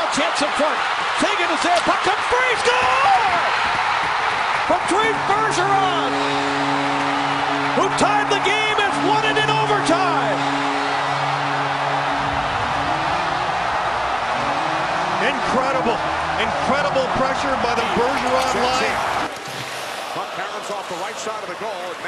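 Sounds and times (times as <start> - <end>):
crowd cheering and whistling: 0.0 - 22.0
arena music: 4.8 - 19.3
low goal horn: 4.8 - 19.3.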